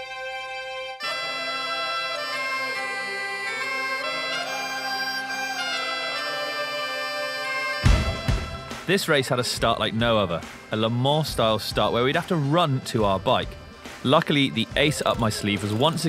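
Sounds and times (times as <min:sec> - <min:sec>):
bagpipes playing a tune: 0:00.0 - 0:08.9.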